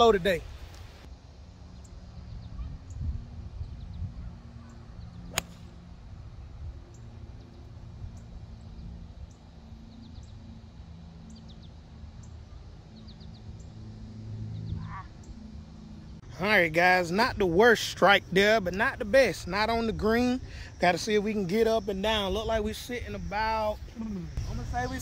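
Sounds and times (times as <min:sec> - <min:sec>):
golf club striking ball: 0:05.3 - 0:05.7.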